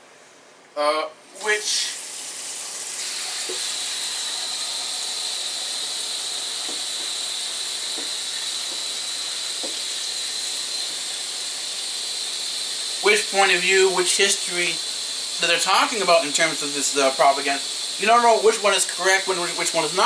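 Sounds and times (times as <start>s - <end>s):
steady hiss: 0.8s - 20.0s.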